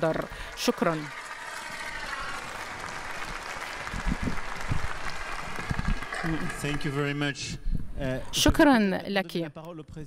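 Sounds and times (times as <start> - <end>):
audience applauding in large hall: 0.3 - 7.2.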